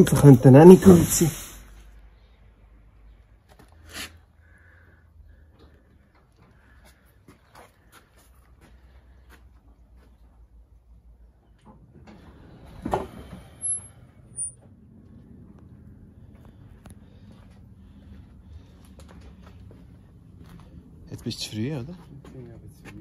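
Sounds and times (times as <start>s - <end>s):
faint low hum: 1.8s - 23.0s.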